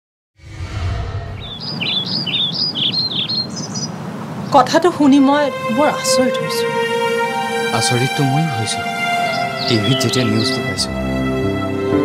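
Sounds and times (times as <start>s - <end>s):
songbird chirping: 1.4s - 11.0s.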